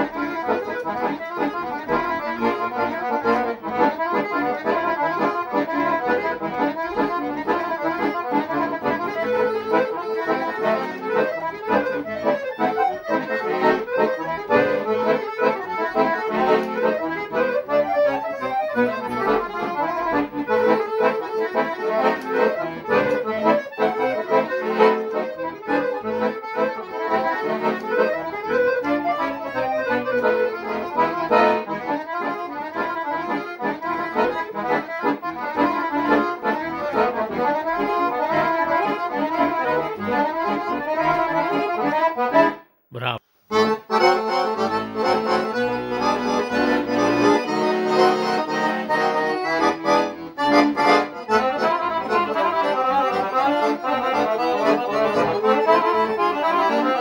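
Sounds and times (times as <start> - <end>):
accordion playing fast tune: 0.0 - 57.0.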